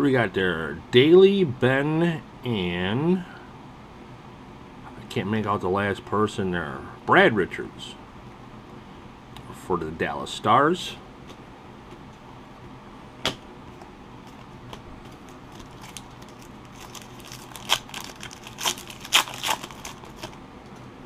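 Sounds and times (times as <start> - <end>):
foil wrapper tearing and crinkling: 15.1 - 20.4.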